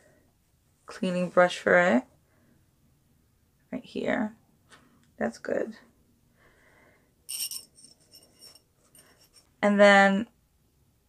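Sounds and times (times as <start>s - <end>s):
metal straw clinking: 7.3s - 9.4s.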